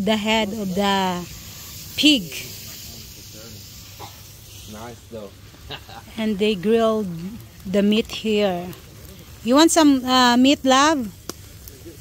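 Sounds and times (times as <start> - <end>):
food hissing over fire: 0.0 - 12.0
faint voices: 0.2 - 12.0.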